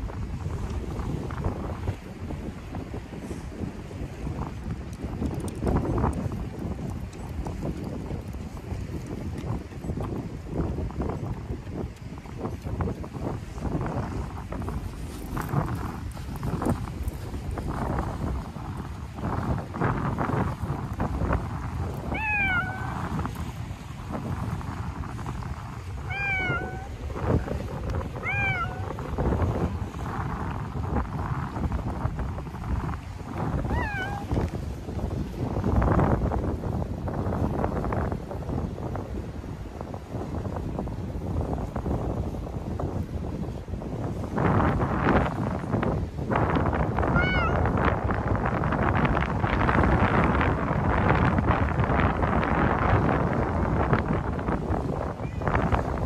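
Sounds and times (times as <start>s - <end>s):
wind noise on microphone: 0.0s - 56.0s
cat meowing: 22.1s - 23.1s, 26.0s - 27.0s, 28.2s - 28.9s, 33.6s - 34.4s, 47.1s - 47.7s.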